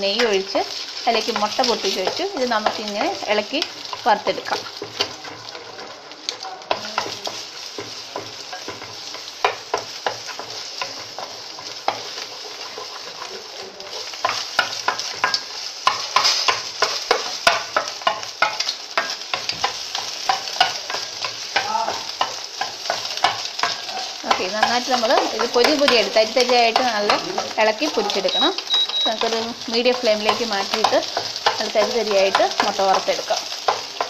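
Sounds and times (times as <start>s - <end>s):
eggs sizzling in a pan: 0.0s - 34.0s
spatula scraping a pan: 0.2s - 34.0s.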